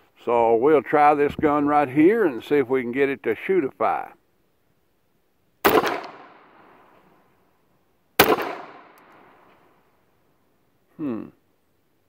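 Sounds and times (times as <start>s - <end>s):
pistol shots: 5.6s - 6.8s, 8.2s - 9.5s.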